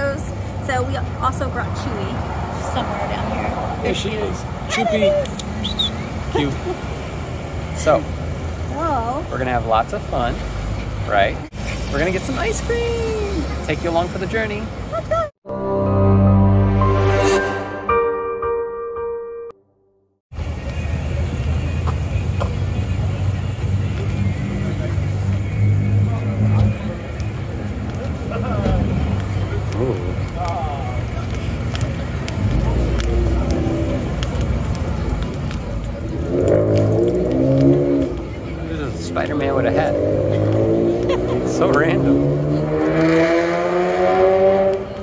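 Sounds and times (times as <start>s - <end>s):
car engine accelerating: 20.4s - 45.0s.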